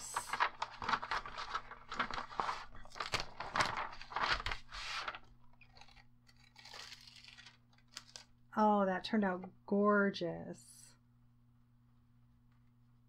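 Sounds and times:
paper and foil rustling: 0:00.0 - 0:08.3
foil film peeling: 0:00.4 - 0:08.3.

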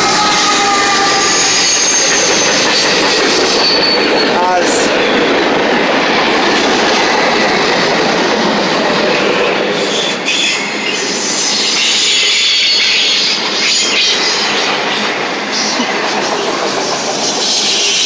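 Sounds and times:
high-pitched wheel squeals: 0:00.0 - 0:04.4, 0:09.9 - 0:14.4
train wheels rumbling on rail: 0:00.0 - 0:18.0.

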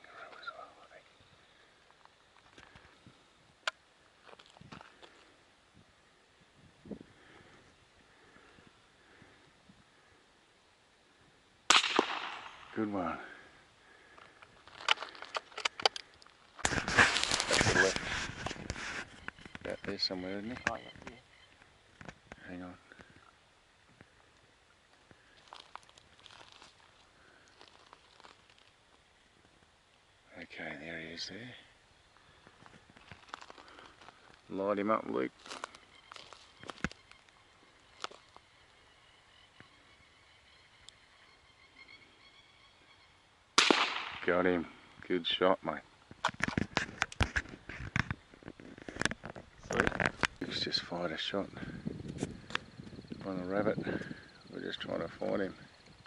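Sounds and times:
footsteps crunching on dry ground: 0:04.0 - 0:05.4, 0:13.9 - 0:23.2, 0:24.9 - 0:29.6, 0:32.2 - 0:38.7
loud gunshot: 0:11.7 - 0:12.7, 0:43.6 - 0:44.3.

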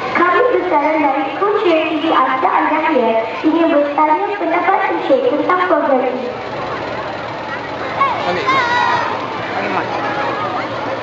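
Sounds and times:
faint distant voices: 0:03.0 - 0:11.0.

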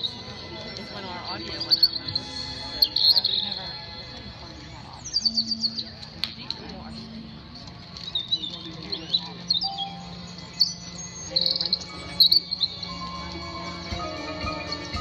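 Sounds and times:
small birds chirping: 0:04.7 - 0:06.2, 0:07.6 - 0:13.0.

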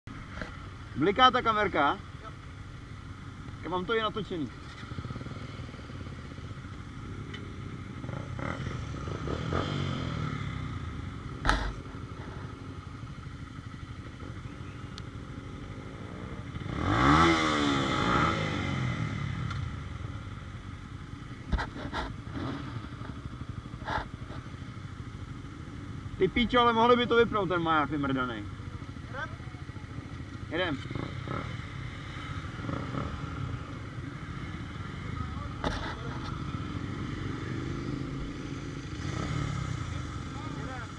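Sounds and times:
motorcycle engine running: 0:00.1 - 0:40.9.

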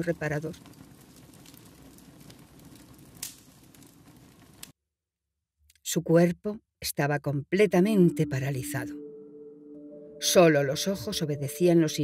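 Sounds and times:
wood fire crackling: 0:00.0 - 0:04.8.

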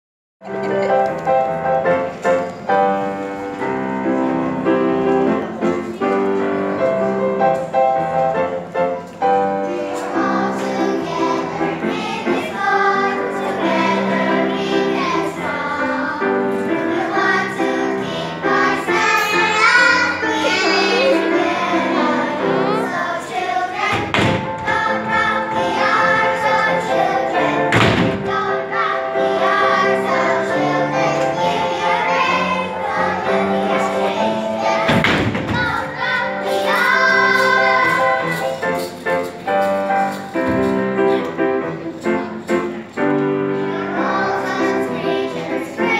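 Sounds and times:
children's choir singing: 0:00.4 - 0:45.9
instrumental accompaniment: 0:00.4 - 0:45.9.

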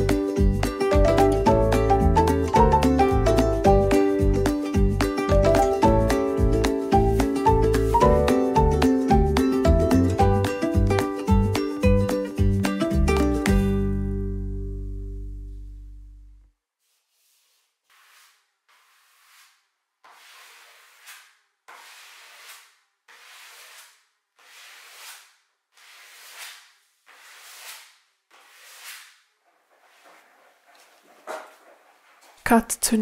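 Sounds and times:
background music: 0:00.0 - 0:16.2
hands rubbing wallpaper on wall: 0:16.6 - 0:32.4.

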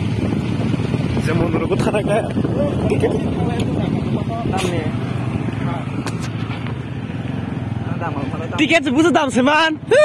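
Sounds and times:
motorcycle engine running: 0:00.0 - 0:09.9.

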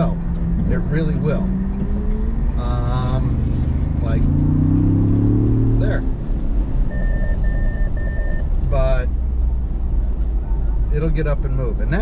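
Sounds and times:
car engine accelerating: 0:00.0 - 0:11.3
road noise: 0:00.0 - 0:12.0.

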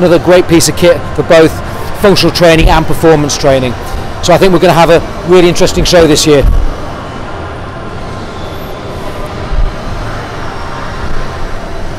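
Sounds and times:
exhibition hall background noise: 0:00.0 - 0:11.9.

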